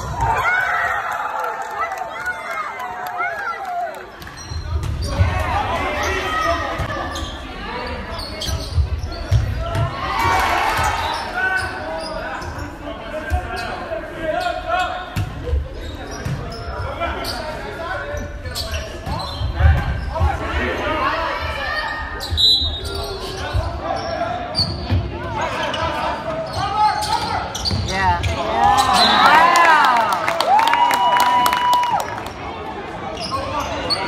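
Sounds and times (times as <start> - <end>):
people talking and calling out: 1.9 - 34.0.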